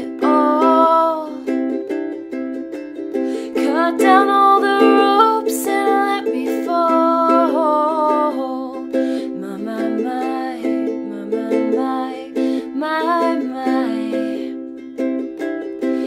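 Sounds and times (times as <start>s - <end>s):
ukulele strummed and picked: 0.0s - 16.0s.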